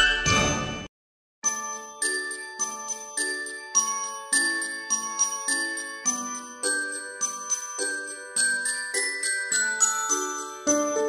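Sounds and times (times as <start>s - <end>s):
bell-like jingle chimes: 0.0s - 11.0s
glockenspiel-like tune: 0.0s - 11.0s.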